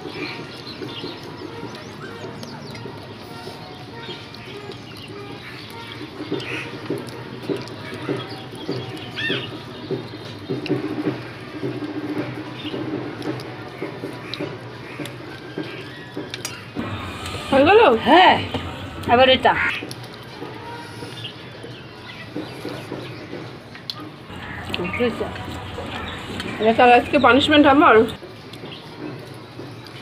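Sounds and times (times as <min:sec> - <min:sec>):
people chewing and slurping: 0:00.0 - 0:30.0.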